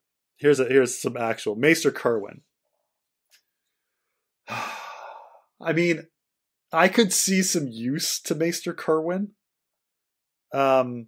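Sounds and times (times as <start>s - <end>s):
long breathy sigh: 4.5s - 5.5s.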